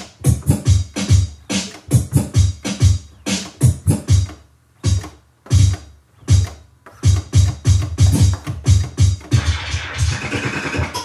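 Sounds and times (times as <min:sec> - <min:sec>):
drum beat on turntables: 0:00.0 - 0:11.0
record scratching: 0:00.0 - 0:11.0.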